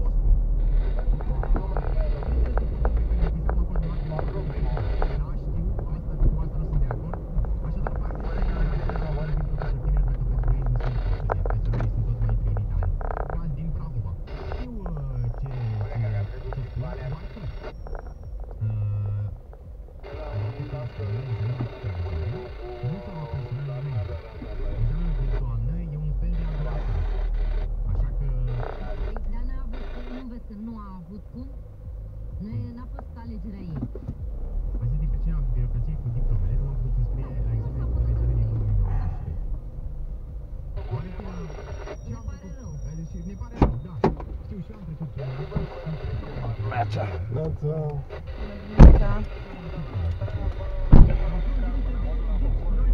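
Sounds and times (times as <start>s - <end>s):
music with singing from car radio: 0.0s - 52.9s.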